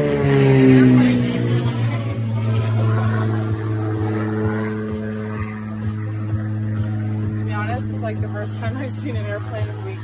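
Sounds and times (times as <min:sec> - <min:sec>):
synth workout music with kick drum: 0:02.2 - 0:10.0.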